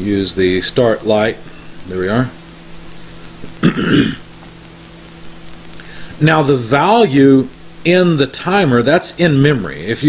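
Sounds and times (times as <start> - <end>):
faint electrical hum with hiss: 0.0 - 10.0
person coughing: 3.6 - 4.3.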